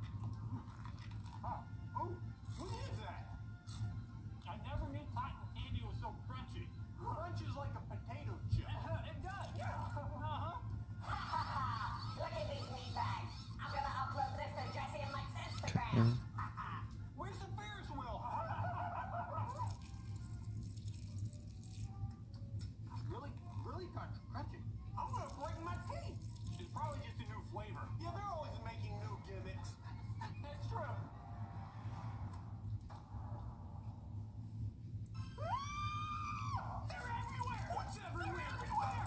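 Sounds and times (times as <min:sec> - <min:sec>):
low steady hum: 0:00.0 - 0:39.0
high-pitched scream: 0:35.2 - 0:36.9.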